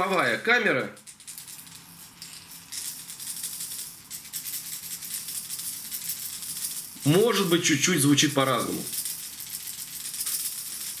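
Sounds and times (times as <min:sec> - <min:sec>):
steel balls rattling in lures: 0:00.8 - 0:11.0.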